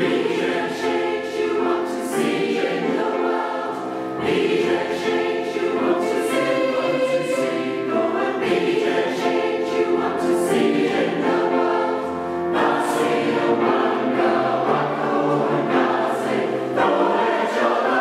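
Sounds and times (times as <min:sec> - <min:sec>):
choir singing sustained chords: 0:00.0 - 0:18.0.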